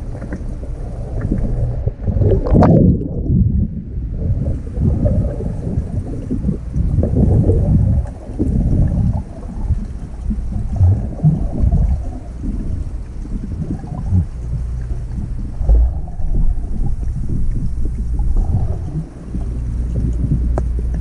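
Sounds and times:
underwater rumble and sloshing: 0:00.0 - 0:21.0.

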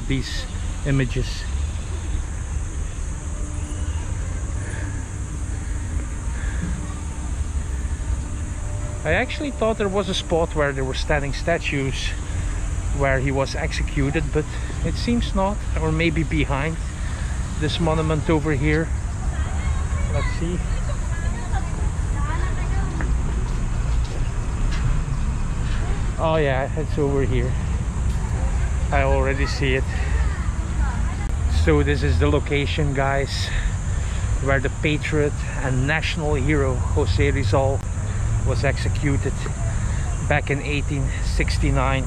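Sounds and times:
faint voices: 0:00.0 - 0:42.0
low outdoor rumble: 0:00.0 - 0:42.0.

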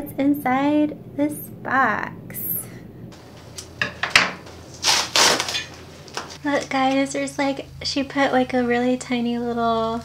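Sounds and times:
cardboard scraping: 0:04.7 - 0:06.4
rasp of cardboard and tape: 0:04.8 - 0:05.6.

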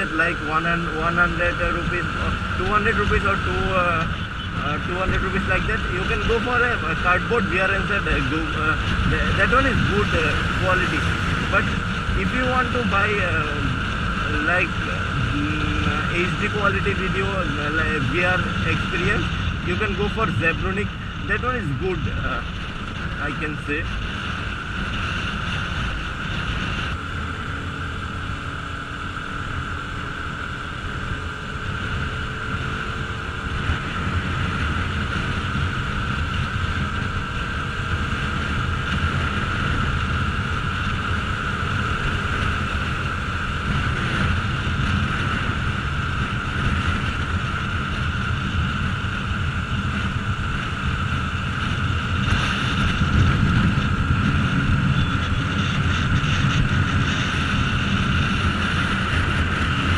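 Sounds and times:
motorcycle engine running: 0:00.0 - 0:59.9
wind rush on microphone: 0:00.0 - 0:59.9.

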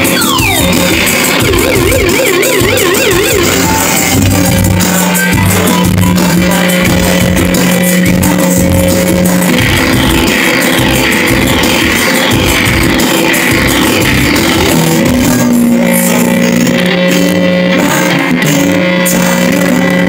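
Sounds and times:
falling high-pitched sweeps: 0:00.0 - 0:04.2
live band music: 0:00.0 - 0:04.8.

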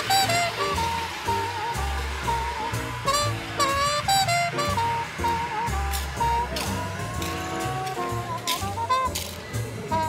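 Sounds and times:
saxophone long note: 0:00.0 - 0:09.1
cymbals: 0:00.0 - 0:10.0
walking bass: 0:00.0 - 0:10.0.

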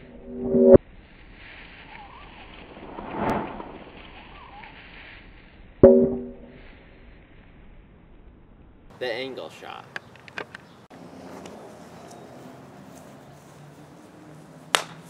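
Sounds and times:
faint hiss: 0:00.9 - 0:05.8
soft swell: 0:02.0 - 0:04.6.

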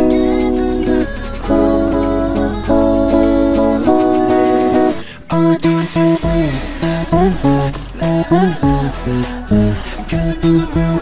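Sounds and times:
low bass line: 0:00.0 - 0:05.0, 0:06.0 - 0:11.0
clean electric guitar: 0:00.0 - 0:11.0.

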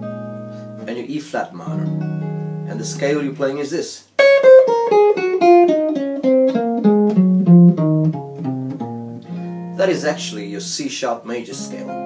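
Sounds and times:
jazz guitar descending scale: 0:00.0 - 0:01.0, 0:01.6 - 0:12.0.

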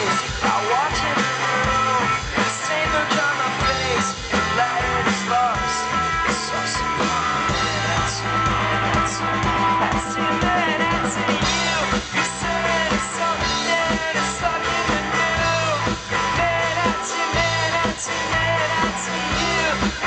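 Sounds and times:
electric guitar: 0:00.0 - 0:20.0
rock band playing live: 0:00.0 - 0:20.0.

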